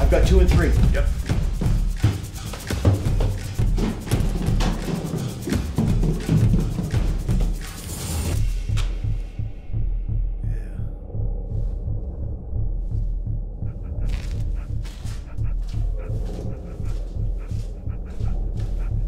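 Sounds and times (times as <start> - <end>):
low heartbeat-like pulse: 0.0 - 19.0.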